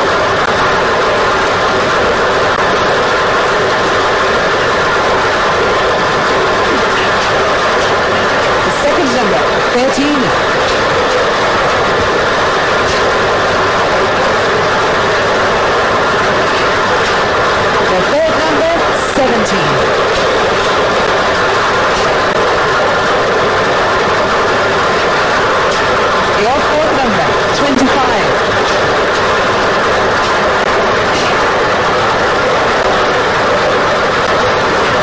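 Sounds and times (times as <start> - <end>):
lottery machine rattling and whirring: 0.0 - 35.0.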